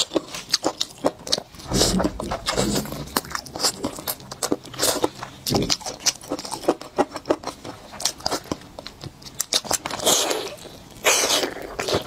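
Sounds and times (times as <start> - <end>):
chewing crunchy chicken: 0.0 - 12.0.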